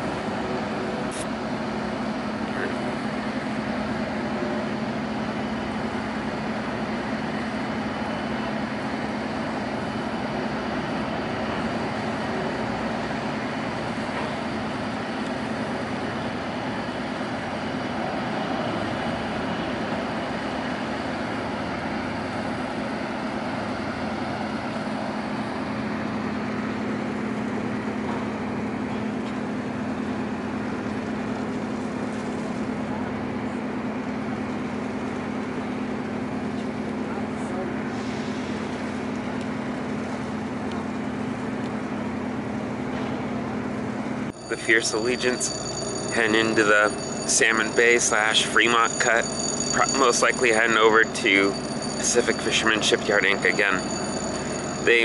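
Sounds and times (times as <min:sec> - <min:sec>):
diesel machinery humming: 0:00.0 - 0:55.0.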